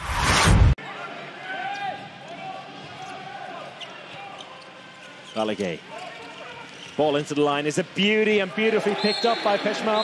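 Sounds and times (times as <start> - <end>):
rising whoosh with deep boom: 0.0 - 0.8.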